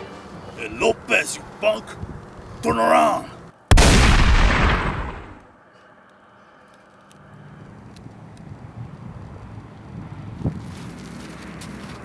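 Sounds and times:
gunshot echo: 0:03.7 - 0:05.4.

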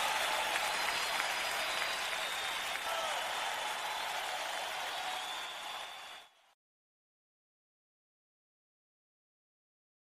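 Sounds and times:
audience applauding: 0:00.0 - 0:06.6.

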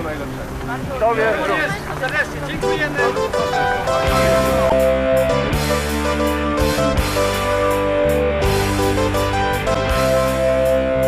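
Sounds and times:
background music with held chords: 0:00.0 - 0:11.0.

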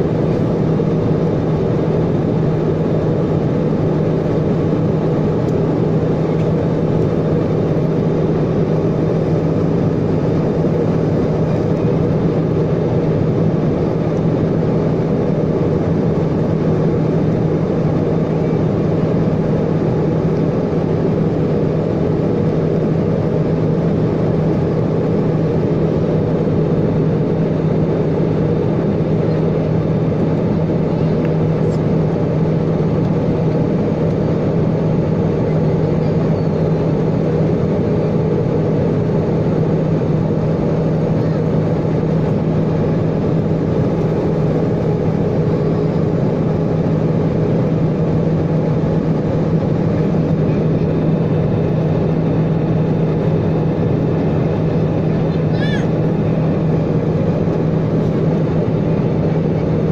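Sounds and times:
airliner cabin engine rush: 0:00.0 - 0:59.9
low cabin hum: 0:00.0 - 0:59.9.

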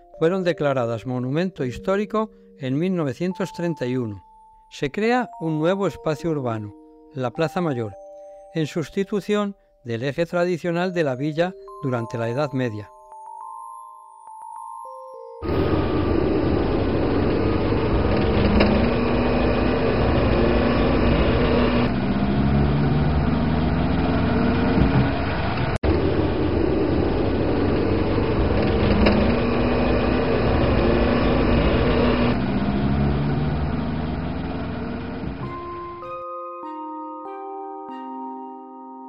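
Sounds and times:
road noise inside car: 0:15.4 - 0:35.5
car engine revving: 0:15.4 - 0:35.9.

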